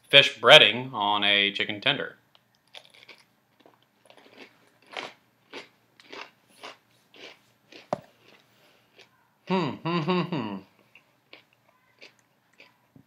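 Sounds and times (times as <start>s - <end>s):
crunchy chewing: 2.6s - 9.2s, 10.9s - 12.9s.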